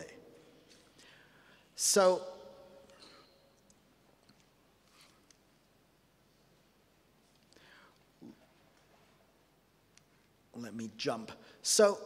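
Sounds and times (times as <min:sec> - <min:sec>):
faint breath-like hiss: 0:00.8 - 0:01.8, 0:07.4 - 0:08.4.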